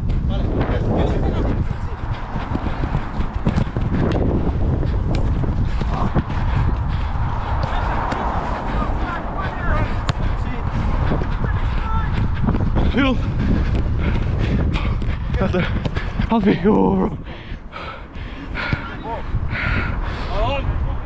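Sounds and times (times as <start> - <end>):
wind rumble on microphone: 0.0 - 21.0
players calling out: 7.4 - 20.4.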